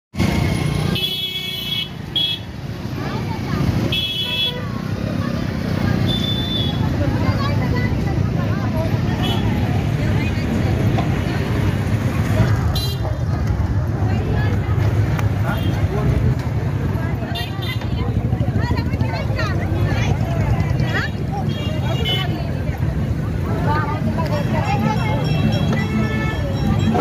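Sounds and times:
street crowd chatter: 0.1s - 27.0s
traffic: 0.1s - 27.0s
vehicle horns tooting: 0.9s - 2.5s, 3.9s - 4.8s, 5.9s - 7.0s, 12.7s - 13.1s, 25.1s - 27.0s.

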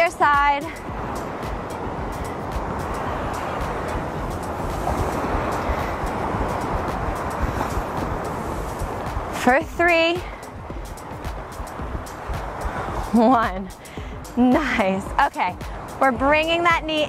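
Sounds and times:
background music: 0.0s - 17.0s
ocean surf breaking on rocks: 0.0s - 17.0s.

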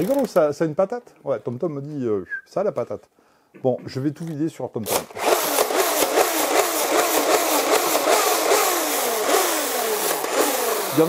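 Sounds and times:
toy blaster whines: 5.2s - 11.0s.

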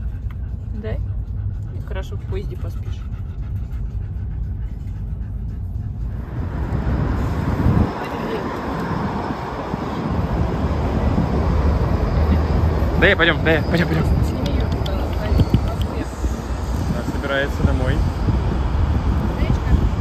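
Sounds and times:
city traffic noise: 0.0s - 20.0s
low rumble inside car: 0.0s - 20.0s.

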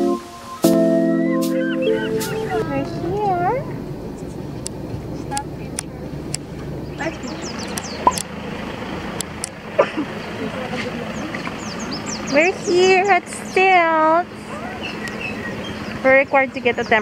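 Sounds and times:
vehicle rumble: 0.0s - 17.0s
faint high chirps: 1.3s - 3.2s
indistinct voices: 1.5s - 8.3s, 9.1s - 17.0s.

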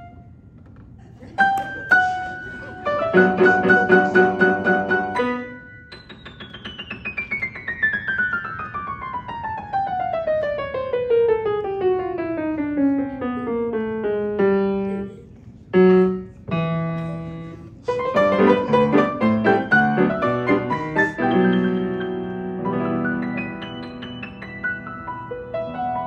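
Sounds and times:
grand piano playing: 1.4s - 26.0s.

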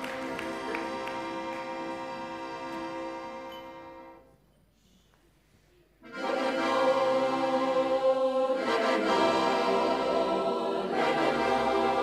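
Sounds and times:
choir singing sustained chords: 6.1s - 12.0s.

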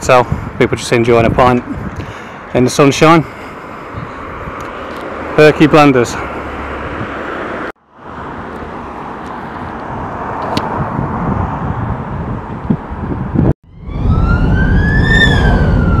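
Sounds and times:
traffic: 0.0s - 16.0s
wind: 0.0s - 16.0s
car rumbling on road: 3.2s - 16.0s
siren wail: 13.6s - 16.0s.

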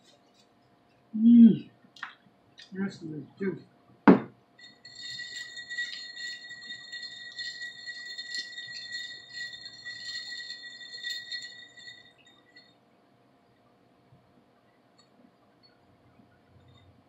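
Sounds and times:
ice cubes clinking in a glass: 4.6s - 12.7s
glass ringing chime: 4.6s - 12.8s.

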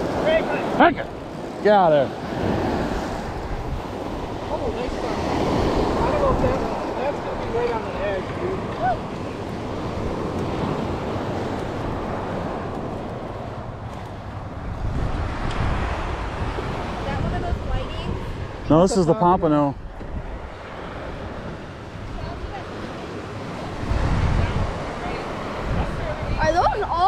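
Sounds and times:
surf washing onto beach: 0.0s - 27.0s
wind buffeting microphone: 0.0s - 27.0s.

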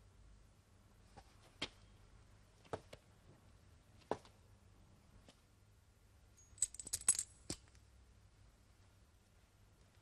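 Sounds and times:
small metal pieces jingling: 6.4s - 7.7s.

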